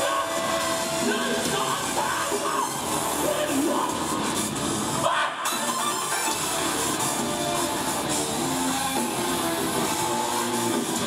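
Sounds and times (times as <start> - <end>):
electric guitar: 0.0 - 11.0
live rock band playing: 0.0 - 11.0.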